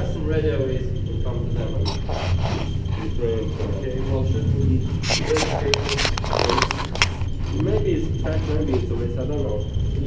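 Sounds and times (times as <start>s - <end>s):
geiger counters clicking: 0.0s - 10.0s
indistinct voices: 0.0s - 10.0s.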